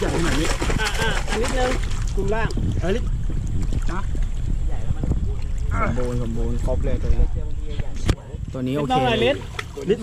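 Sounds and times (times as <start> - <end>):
wind buffeting microphone: 0.0 - 10.0
men speaking: 8.4 - 10.0.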